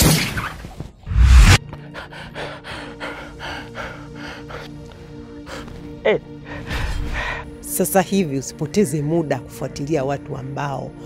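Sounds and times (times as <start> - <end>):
background music with held notes: 1.6 - 11.0.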